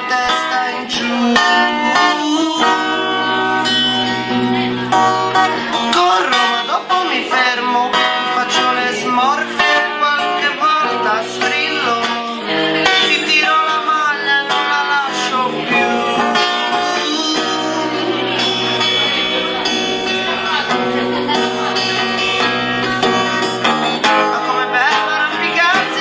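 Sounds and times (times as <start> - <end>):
plucked guitar with sliding melody: 0.0 - 26.0.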